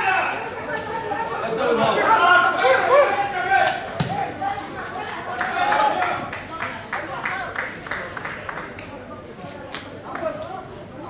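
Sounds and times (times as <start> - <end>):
ball being kicked: 4.0 - 4.2.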